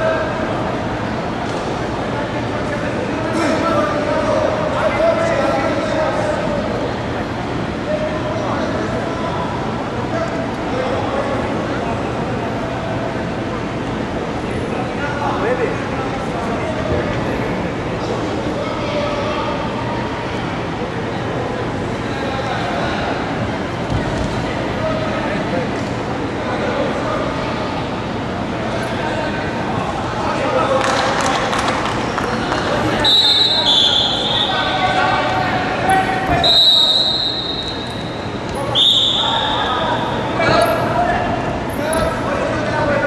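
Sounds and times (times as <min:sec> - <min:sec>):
rumbling hall noise: 0:00.0 - 0:43.0
referee's whistle blasts: 0:33.0 - 0:34.6, 0:36.3 - 0:39.7.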